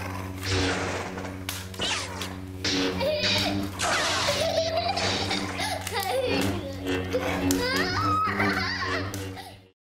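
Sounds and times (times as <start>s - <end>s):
background music: 0.0s - 9.8s.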